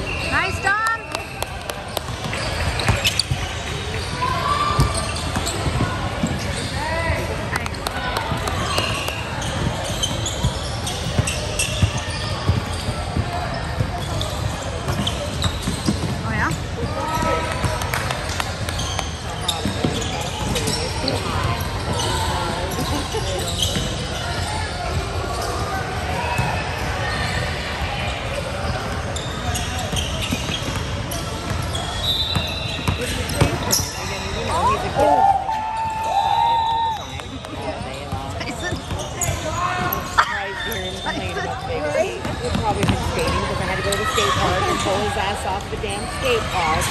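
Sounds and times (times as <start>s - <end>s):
echoing voices in hall: 33.0s - 46.9s
basketballs bouncing on hardwood: 42.2s - 43.4s.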